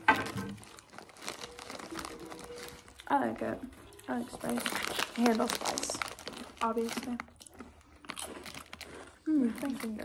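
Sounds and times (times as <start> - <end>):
plastic snack bag crinkling: 0.0 - 10.0.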